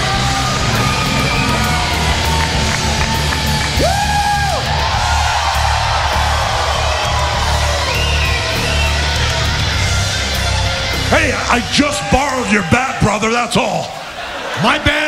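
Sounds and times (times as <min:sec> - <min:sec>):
loud held yell: 0:00.0 - 0:09.5
heavy rock music: 0:00.0 - 0:13.6
crowd cheering and yelling: 0:00.0 - 0:15.0.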